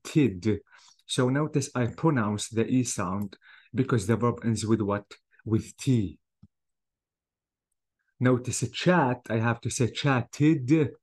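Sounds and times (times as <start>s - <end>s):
man speaking: 0.0s - 6.2s, 8.2s - 11.0s.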